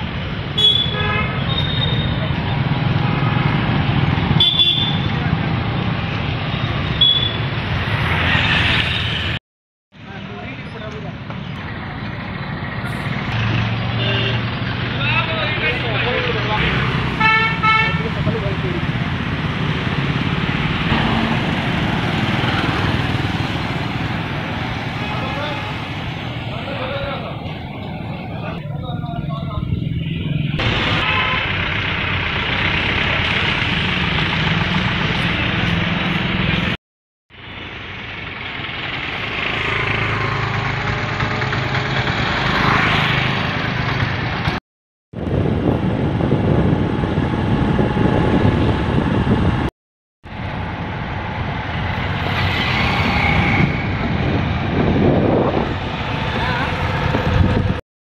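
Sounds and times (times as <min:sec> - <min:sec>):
street traffic: 0:00.0 - 0:57.8
car horn short beeps: 0:07.0 - 0:07.4
vehicle engine running: 0:30.6 - 0:36.6.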